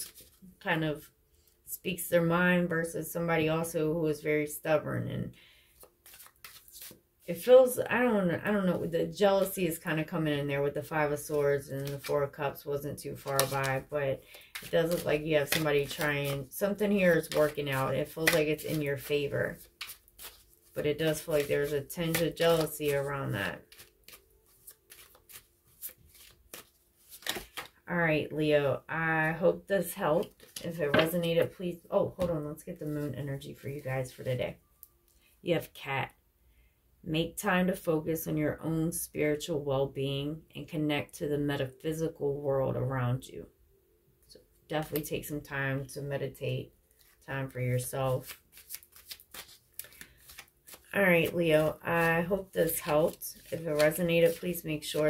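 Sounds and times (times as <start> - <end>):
cards clicking and rustling: 5.8 - 7.0, 14.4 - 20.5, 21.1 - 27.8, 48.2 - 54.9.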